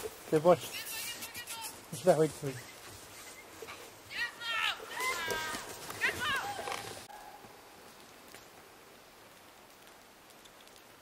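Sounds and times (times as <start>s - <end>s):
faint outdoor background hiss: 0.0s - 11.0s.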